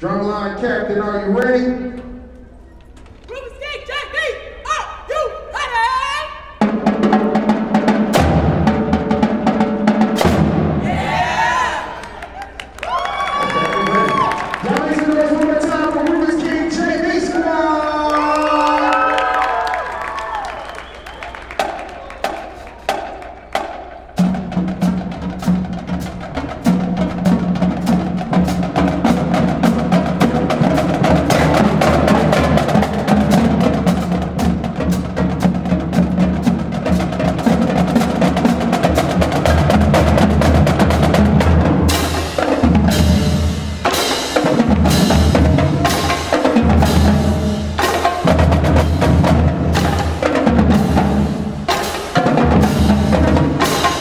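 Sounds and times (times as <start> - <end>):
marching drumline: 3.3 - 17.6, 18.2 - 54.0
snare drum rolls: 6.6 - 10.9, 13.2 - 17.4, 18.2 - 54.0
bass drum notes: 6.6 - 11.3, 21.6 - 54.0.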